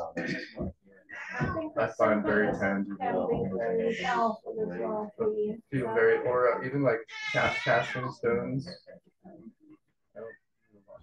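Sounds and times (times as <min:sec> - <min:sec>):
person speaking quietly: 0:00.0 - 0:09.5.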